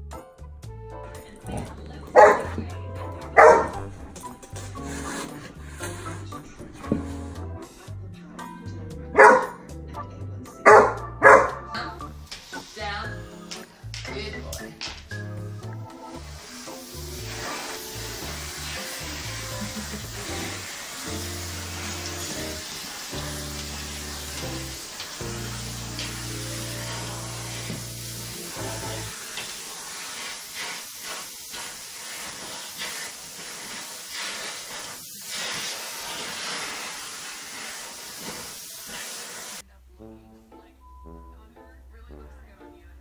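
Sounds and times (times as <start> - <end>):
background music with bass line: 0.0 - 12.3
vacuum cleaner running: 16.2 - 39.6.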